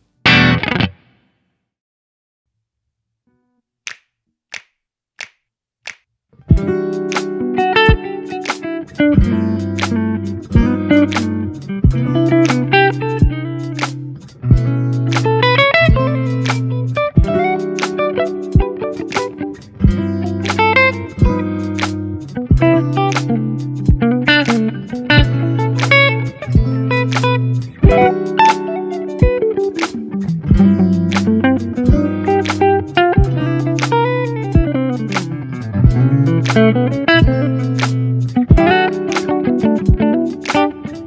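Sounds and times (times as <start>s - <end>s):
electric guitar chords and fills: 0.2s - 1.1s, 6.5s - 41.0s.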